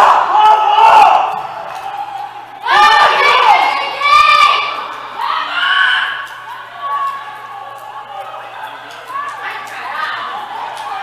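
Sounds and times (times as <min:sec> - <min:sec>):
high-pitched voices shouting: 0:00.0 - 0:08.4.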